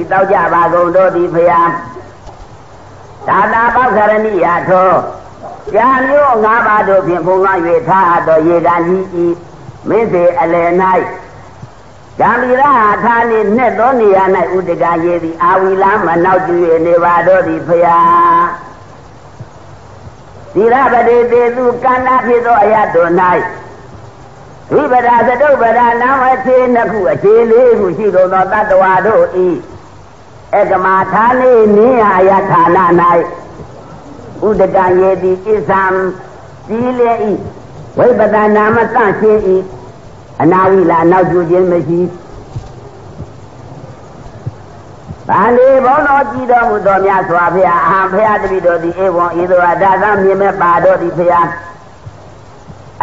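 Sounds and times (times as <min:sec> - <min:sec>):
faint recording hiss: 0:00.0 - 0:53.0
man chanting a syllable: 0:30.6 - 0:39.8
faint low knocks: 0:42.1 - 0:45.4.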